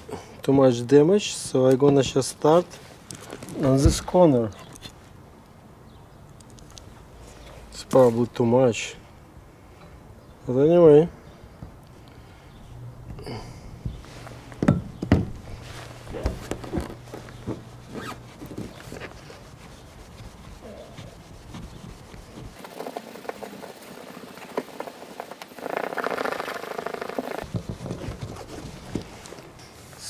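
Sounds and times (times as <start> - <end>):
towel rubbing plastic window: 15.3 - 29.5.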